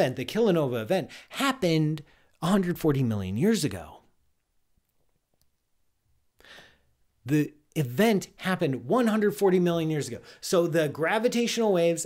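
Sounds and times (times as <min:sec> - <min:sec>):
man's quiet intake of breath: 0:06.4 - 0:07.0.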